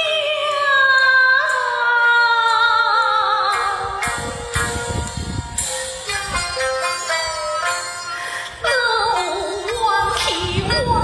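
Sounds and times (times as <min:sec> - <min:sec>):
opera instrumental accompaniment: 0:00.0 - 0:11.0.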